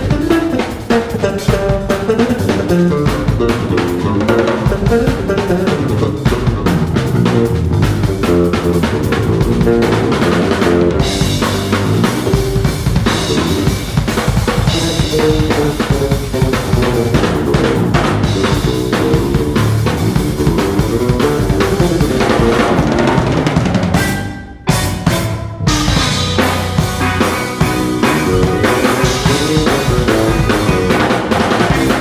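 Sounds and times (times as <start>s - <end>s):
drum kit pattern: 0.0s - 32.0s
electric bass line: 0.0s - 32.0s
cymbals: 11.0s - 32.0s.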